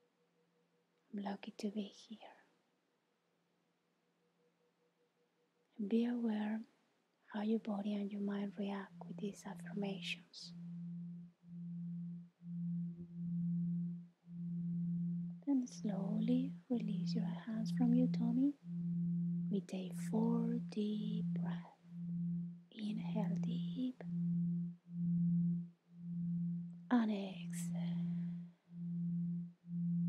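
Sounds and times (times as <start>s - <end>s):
low pure tone drone: 8.5s - 30.0s.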